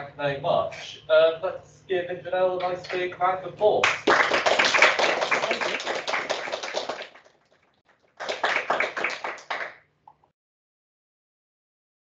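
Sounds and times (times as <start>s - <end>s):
audience applauding: 3.8s - 7.3s, 8.2s - 9.8s.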